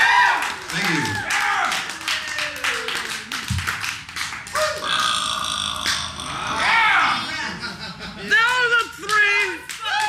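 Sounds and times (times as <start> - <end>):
audience whooping and shouting: 0.0 - 3.3, 8.4 - 10.0
audience clapping: 0.0 - 5.0, 8.4 - 10.0.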